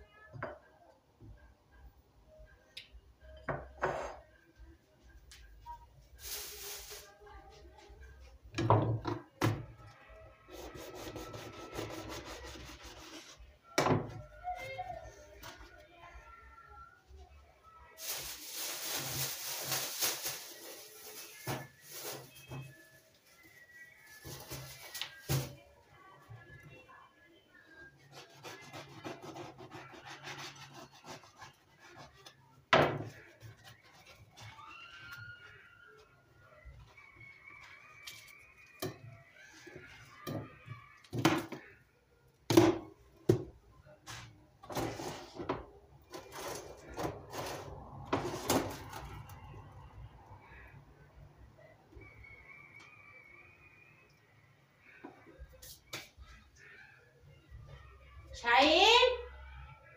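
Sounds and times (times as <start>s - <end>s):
kitchen knocks and clatter: 32.7s - 33.2s.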